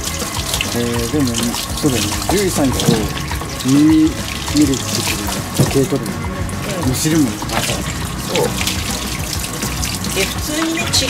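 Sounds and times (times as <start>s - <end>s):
shower head spraying water: 0.0s - 11.0s.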